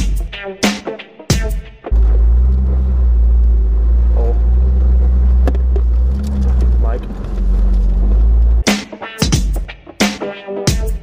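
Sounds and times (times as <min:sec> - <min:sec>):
vehicle engine and road rumble: 0:01.9 - 0:08.6.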